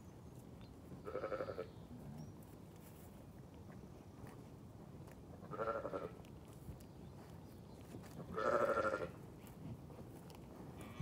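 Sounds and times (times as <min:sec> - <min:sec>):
sheep bleating: 0:01.1 - 0:01.7, 0:05.5 - 0:06.2, 0:08.3 - 0:09.2.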